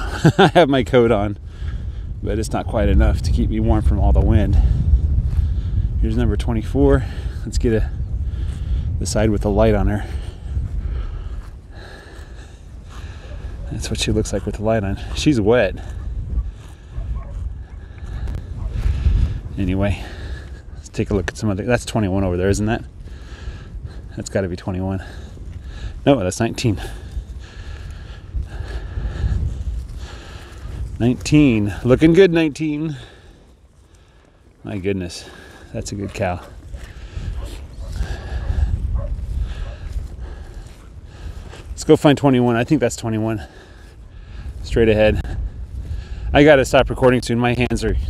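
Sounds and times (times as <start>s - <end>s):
cattle grazing: 0.0s - 48.0s
wind buffeting microphone: 0.0s - 48.0s.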